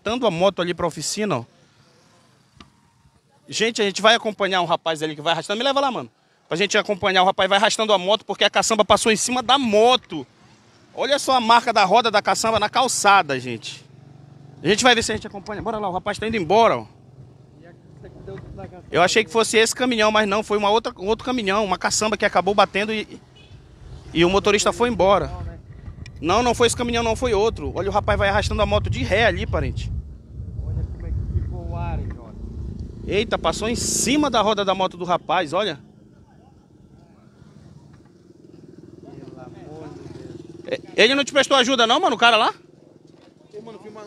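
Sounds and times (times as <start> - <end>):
motorcycle engine running: 12.2 - 44.0.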